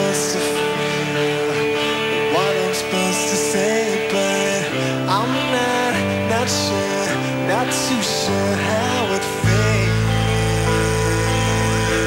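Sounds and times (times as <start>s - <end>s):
electric guitar chord: 0.0s - 12.0s
sustained bass note: 9.4s - 12.0s.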